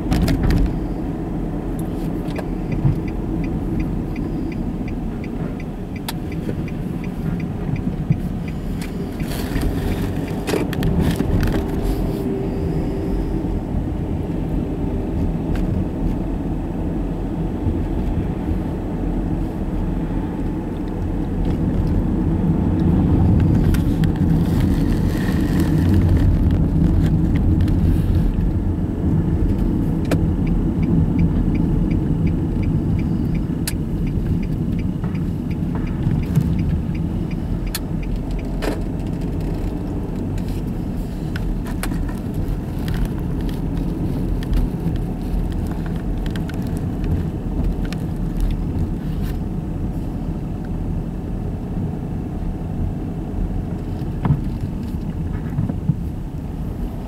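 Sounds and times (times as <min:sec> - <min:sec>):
car road noise rumble: 0:00.0 - 0:57.0
light regular ticking: 0:01.2 - 0:10.8, 0:29.5 - 0:48.9.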